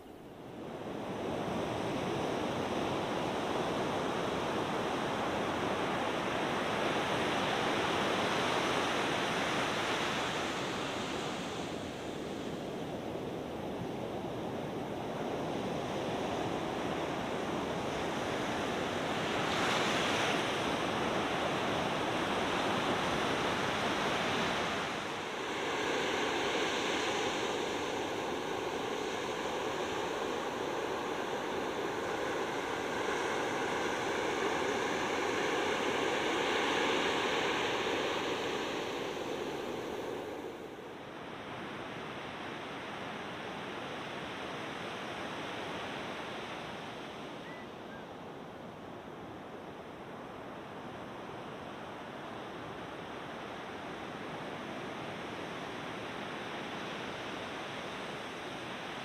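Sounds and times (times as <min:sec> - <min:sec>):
wind: 0:00.0 - 0:59.0
ocean surf rushing: 0:18.3 - 0:41.6.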